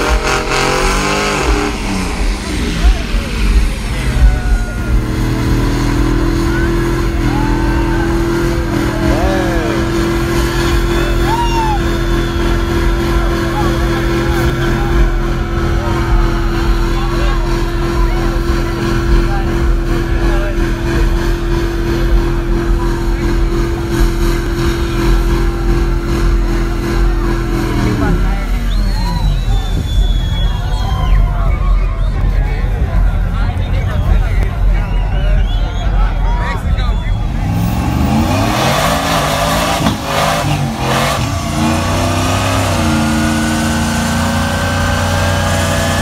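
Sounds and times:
crowd voices and shouts: 0.0 - 46.0
truck engine revving high: 0.0 - 46.0.

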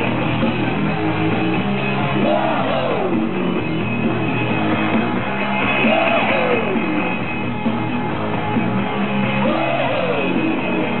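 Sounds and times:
loud dance music: 0.0 - 11.0.

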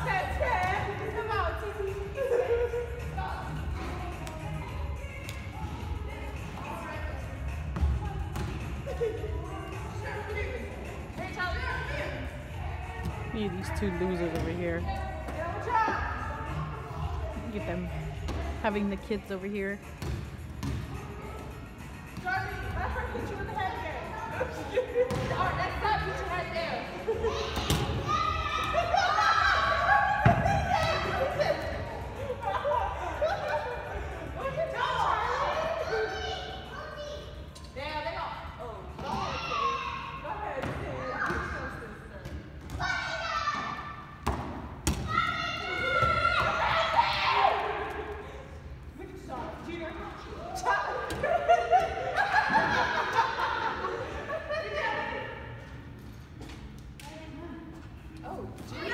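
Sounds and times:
children's calls echoing: 44.9 - 48.0.

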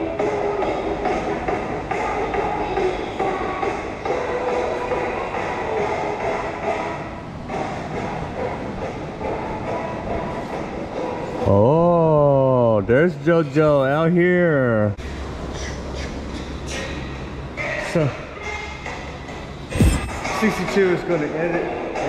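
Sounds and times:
background music: 0.0 - 12.2, 17.5 - 22.0.

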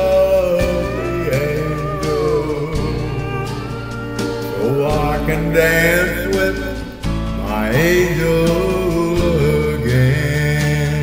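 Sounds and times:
country band music: 0.0 - 11.0
gliding bending melody line: 0.4 - 7.9
steady low bass note: 0.7 - 8.3.

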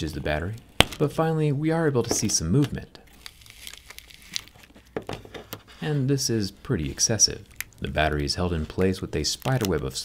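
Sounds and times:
adhesive crinkling and peeling: 2.0 - 10.0.

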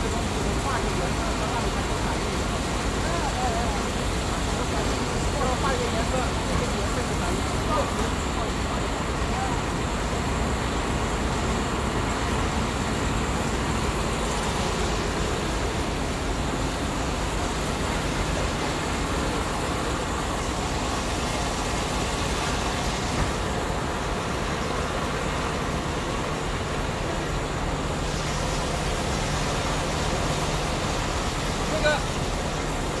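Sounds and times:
production line machine noise: 0.0 - 33.0.

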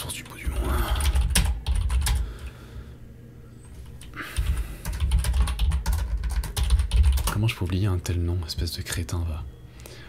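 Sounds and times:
fast typing on keyboard: 0.0 - 2.5, 4.3 - 7.6.

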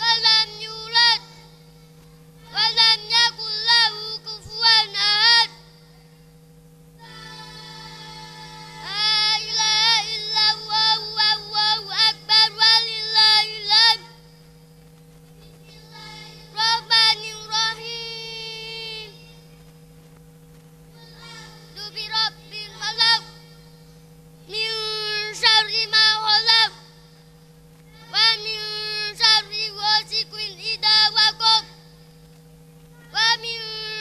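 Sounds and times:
children chanting through microphones: 0.0 - 6.3, 7.0 - 14.3, 15.4 - 19.7, 20.9 - 23.9, 24.5 - 27.2, 27.8 - 32.1, 32.9 - 34.0.

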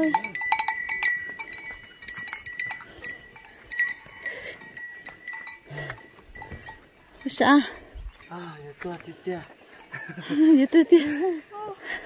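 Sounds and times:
cattle bells clanking: 0.0 - 11.2.

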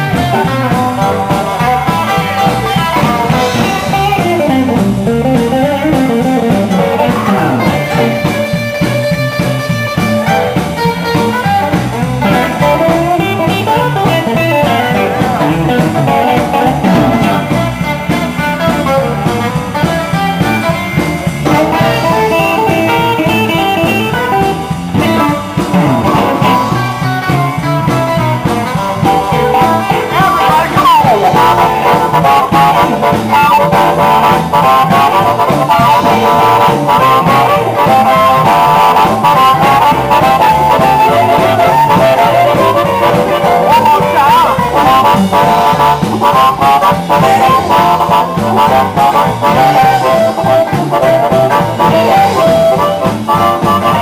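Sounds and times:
blues band playing: 0.0 - 54.0
guitar sliding note: 0.7 - 54.0.

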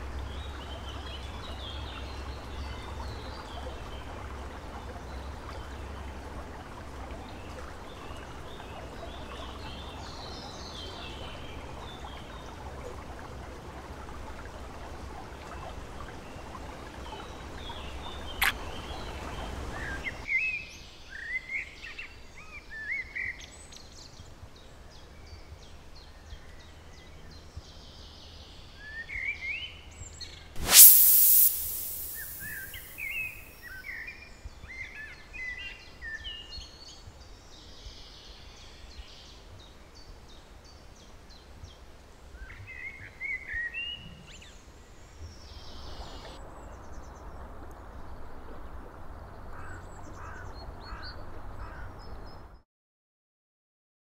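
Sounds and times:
sharp click: 30.6 - 33.2
loud burst of noise: 30.6 - 33.4
rushing noise: 30.6 - 33.5.

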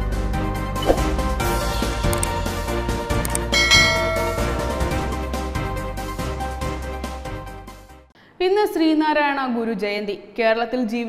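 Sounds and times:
background music: 0.0 - 8.1
bell-like chime: 3.5 - 5.2.

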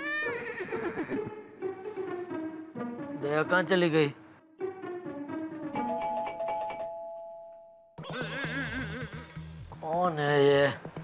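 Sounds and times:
background music: 0.0 - 11.0
electronic doorbell chime: 5.8 - 8.0.

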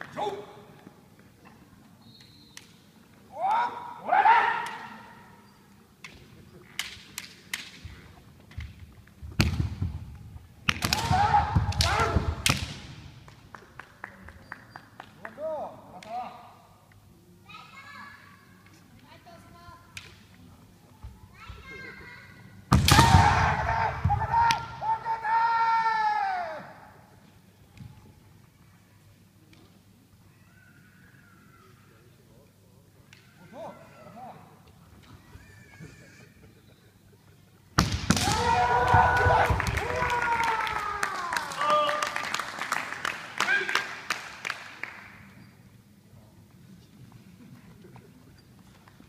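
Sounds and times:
kiai shouts: 0.1 - 0.7, 3.3 - 5.3, 10.9 - 12.4
bamboo swords clacking: 6.0 - 7.9.

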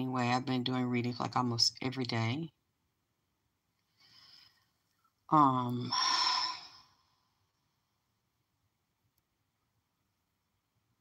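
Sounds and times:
woman sighing: 5.8 - 7.0.

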